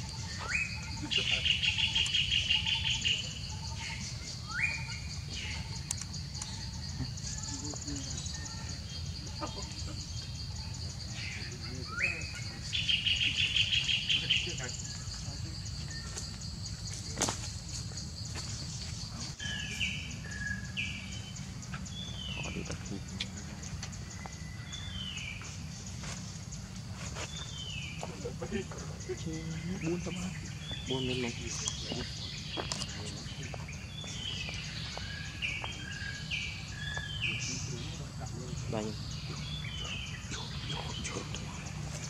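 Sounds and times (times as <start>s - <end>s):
high insect drone: 0.0s - 42.0s.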